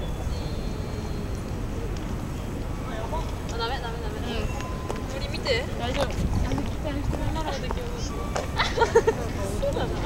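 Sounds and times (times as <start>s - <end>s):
low outdoor rumble: 0.0s - 10.0s
people talking in a crowd: 0.0s - 10.0s.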